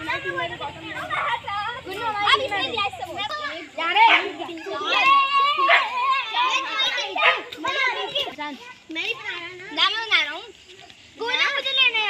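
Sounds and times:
children shouting: 0.0 - 12.0.

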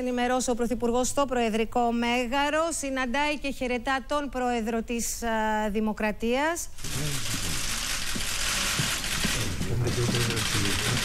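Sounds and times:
camera shutters clicking rapidly: 6.8 - 11.0.

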